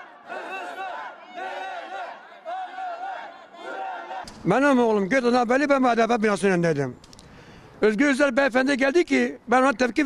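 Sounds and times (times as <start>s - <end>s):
crowd of protesters shouting: 0.0s - 4.3s.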